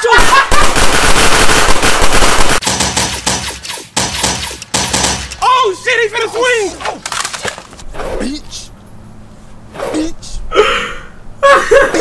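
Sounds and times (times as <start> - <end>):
gunshots: 0.0 - 5.5.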